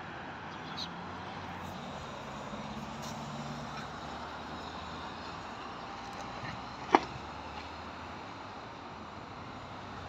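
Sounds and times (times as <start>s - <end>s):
road traffic passing: 0.0s - 10.0s
vehicle engine hum: 0.0s - 10.0s.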